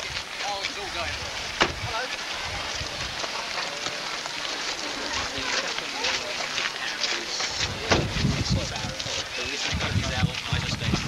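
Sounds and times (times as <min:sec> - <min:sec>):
faint voices: 0:00.0 - 0:11.0
steady outdoor hiss: 0:00.0 - 0:11.0
car door shutting: 0:07.8 - 0:08.1.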